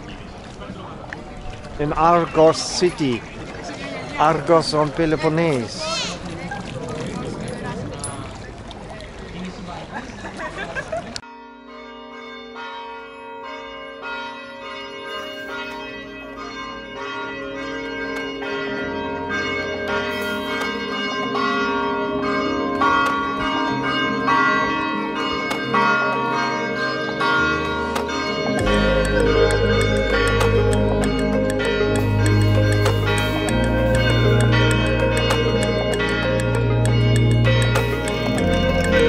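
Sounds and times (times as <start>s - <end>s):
fountain water splashing: 0.0s - 11.2s
church bells ringing: 11.2s - 39.0s
music with low bass: 27.7s - 39.0s.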